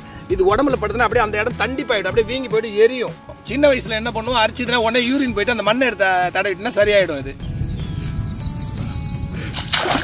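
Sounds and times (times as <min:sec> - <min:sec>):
small bird chirping: 0:07.4 - 0:09.4
splashing in shallow water: 0:09.5 - 0:10.0.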